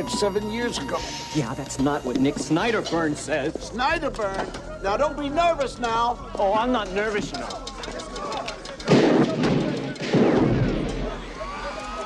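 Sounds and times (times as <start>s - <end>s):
loud gunshot blast: 8.9s - 11.1s.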